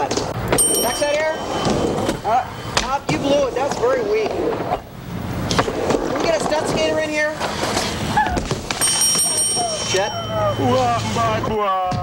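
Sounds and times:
high bell-like ringing tone: 0.5s - 2.6s, 8.8s - 11.5s
skateboard clattering on wood: 5.4s - 9.3s.

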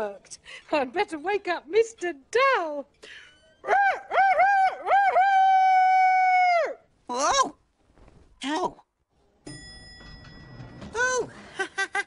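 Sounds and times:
person imitating rooster crow: 3.7s - 6.9s.

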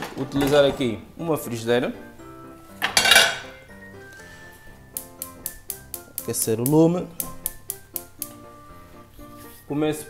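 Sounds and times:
light background music: 0.0s - 10.0s
frying pan clattering on hob: 2.8s - 3.6s
bright ticks: 4.9s - 8.4s.

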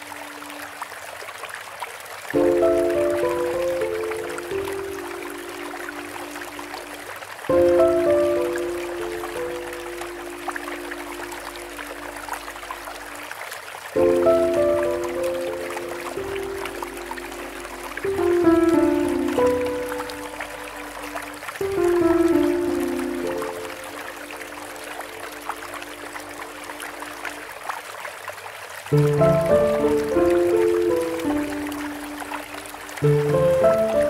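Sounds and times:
slow relaxation music: 0.0s - 1.2s, 2.3s - 34.0s
stream trickling: 0.0s - 34.0s.

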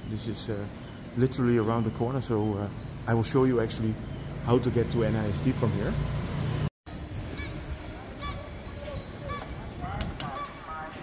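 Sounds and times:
birds chirping: 0.0s - 11.0s
city street rumble: 0.0s - 11.0s.

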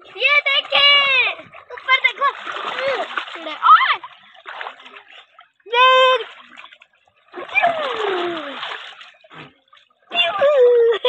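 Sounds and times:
water splashing in a pool: 0.0s - 11.0s.

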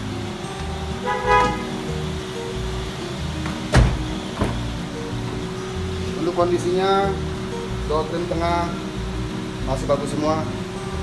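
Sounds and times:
background music: 0.0s - 11.0s
car door latch click: 3.4s - 4.6s
car door shutting thud: 3.4s - 4.7s.

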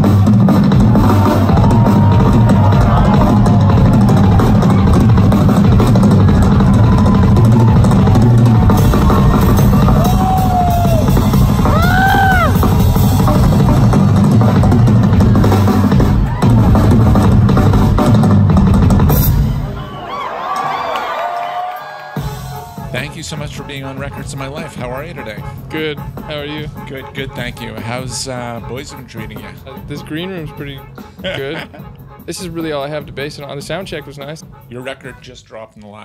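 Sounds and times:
band music with drums and bass: 0.0s - 19.8s, 22.2s - 34.8s.

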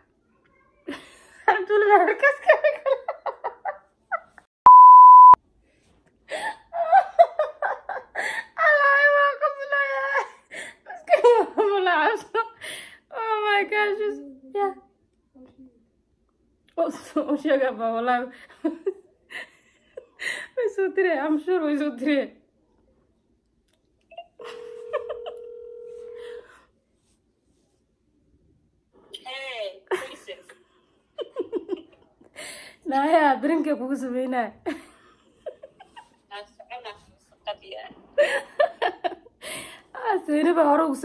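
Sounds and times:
woman laughing: 0.9s - 4.5s, 6.3s - 12.6s, 24.1s - 26.4s, 29.9s - 30.6s, 31.2s - 32.6s, 34.6s - 39.7s
censor bleep tone: 4.7s - 5.4s
phone ringback tone: 24.4s - 26.5s.

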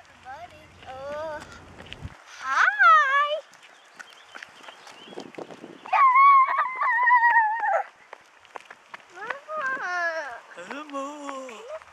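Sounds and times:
child squealing: 5.9s - 7.9s
child wavering cry: 5.9s - 7.9s, 9.2s - 10.5s.

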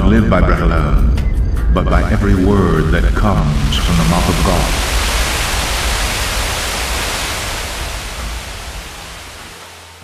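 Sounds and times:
steady rushing noise: 1.9s - 10.0s.

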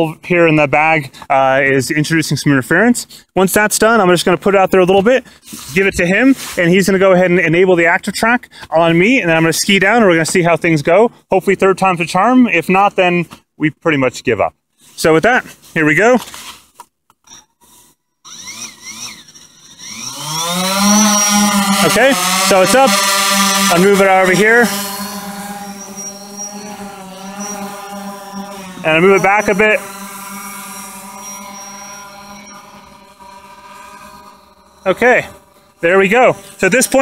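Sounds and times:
drone motors buzzing whine: 17.3s - 37.0s.

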